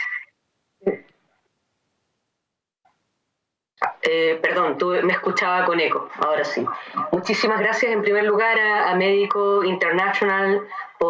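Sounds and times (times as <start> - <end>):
woman speaking over video call: 0.0 - 1.1, 3.8 - 11.0.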